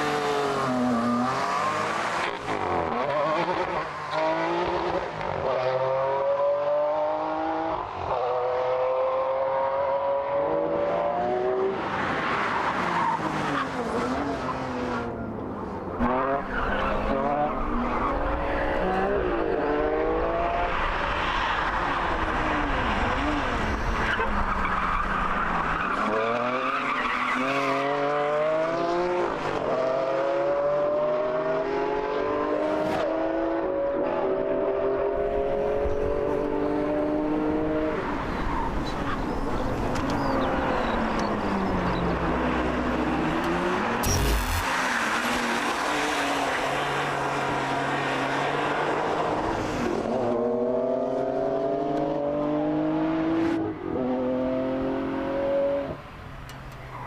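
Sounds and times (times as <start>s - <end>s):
sports car engine revving: 43.1s - 44.7s.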